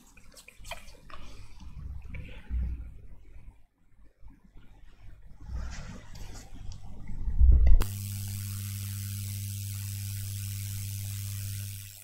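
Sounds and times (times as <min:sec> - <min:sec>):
electrical hum and buzz: 0:05.2 - 0:12.0.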